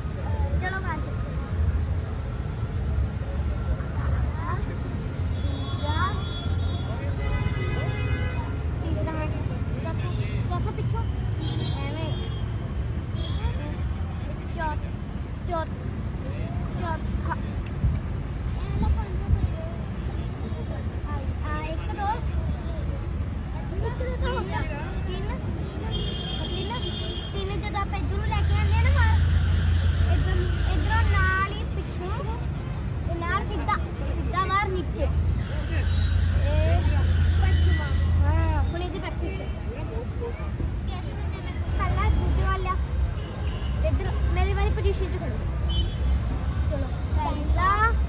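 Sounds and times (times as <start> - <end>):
distant traffic rumble: 0.0 - 48.0.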